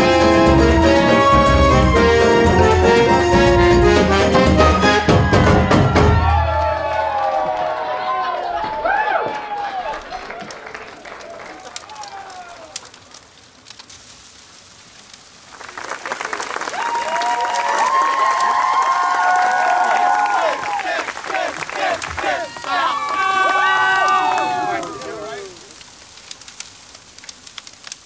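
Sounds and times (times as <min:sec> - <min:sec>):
people clapping: 0:00.0 - 0:13.0, 0:15.4 - 0:25.8
crowd cheering and shouting: 0:04.6 - 0:12.9, 0:16.7 - 0:25.8.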